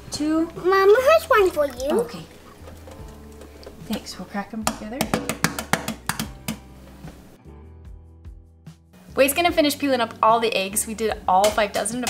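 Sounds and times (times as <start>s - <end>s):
eggs cracking against sink: 1.4s - 6.6s.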